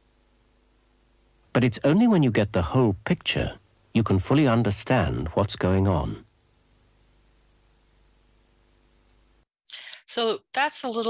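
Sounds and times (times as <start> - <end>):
faint hiss and hum: 0.0 - 10.4
computer mouse clicking: 9.0 - 9.4.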